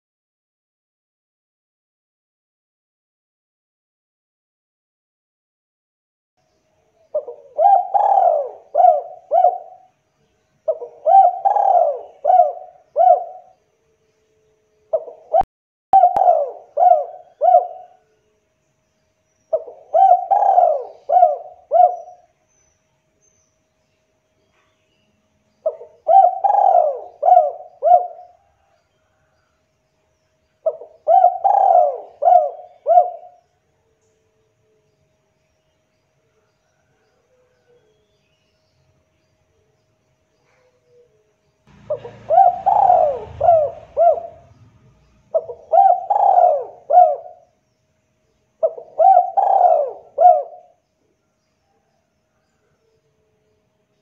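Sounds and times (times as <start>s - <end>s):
dove cooing: 7.1s - 9.9s, 10.6s - 13.6s, 14.9s - 18.0s, 19.5s - 22.3s, 25.6s - 28.8s, 30.6s - 33.4s, 40.4s - 47.5s, 48.6s - 50.8s.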